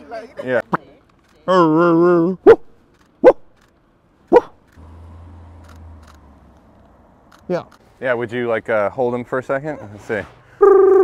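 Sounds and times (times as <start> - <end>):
puppy barking: 4.3 - 4.6.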